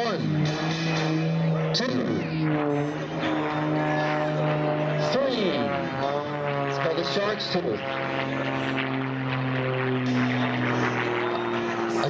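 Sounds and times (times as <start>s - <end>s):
propeller airplane engine droning: 0.0s - 12.0s.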